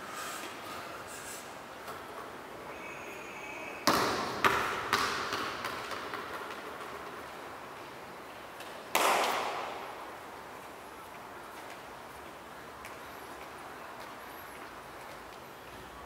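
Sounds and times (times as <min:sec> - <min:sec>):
ball bouncing on tiled floor: 0:03.8 - 0:07.3, 0:08.6 - 0:09.6.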